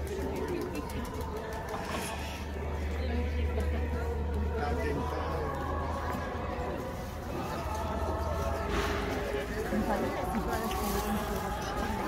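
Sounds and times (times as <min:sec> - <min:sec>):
chatter of passers-by: 0:00.0 - 0:12.0.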